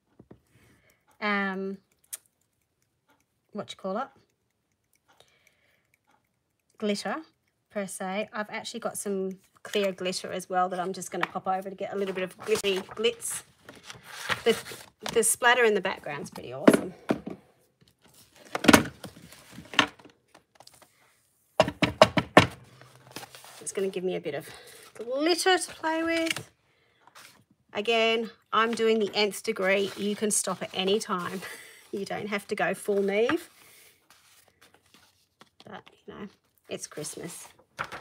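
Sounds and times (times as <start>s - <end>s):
paper rustling: 11.9s - 15.1s, 22.7s - 24.0s, 28.6s - 36.4s.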